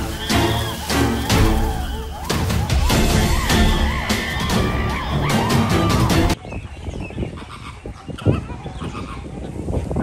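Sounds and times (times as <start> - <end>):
background music: 0.0 - 6.4
flamingos honking: 0.0 - 6.4, 7.3 - 9.3.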